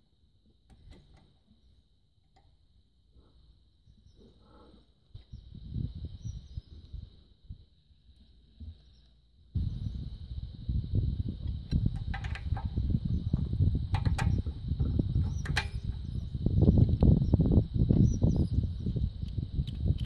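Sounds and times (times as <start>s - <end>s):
wind buffeting microphone: 5.1s - 7.8s, 9.5s - 20.0s.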